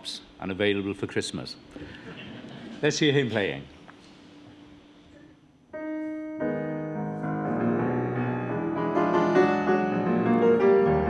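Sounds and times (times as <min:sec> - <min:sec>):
classical solo piano: 0:07.2 - 0:11.0.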